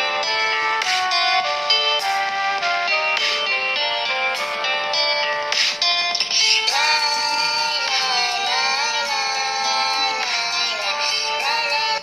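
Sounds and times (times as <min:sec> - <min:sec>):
song with vocals from phone speaker: 0:00.0 - 0:12.0.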